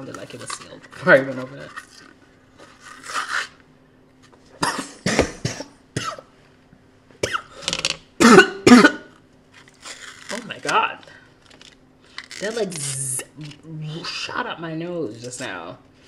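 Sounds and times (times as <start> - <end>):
woman coughing harshly: 4.6 - 6.3, 7.2 - 7.6, 8.2 - 9.2.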